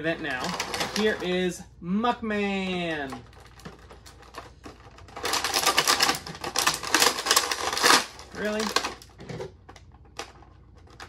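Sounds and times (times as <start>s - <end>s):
plastic bag crinkling: 0.1s - 1.4s, 2.6s - 11.0s.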